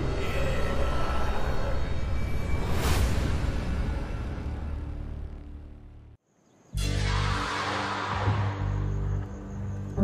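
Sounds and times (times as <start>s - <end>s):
tense background music: 0.0s - 6.2s, 6.8s - 10.0s.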